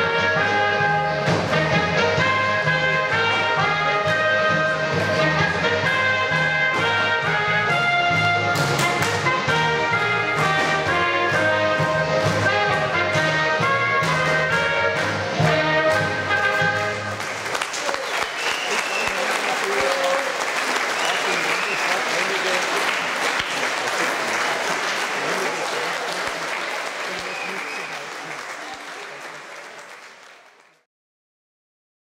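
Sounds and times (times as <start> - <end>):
brass band playing: 0.0 - 29.3
audience applauding: 16.5 - 30.9
voices among clapping: 17.1 - 30.8.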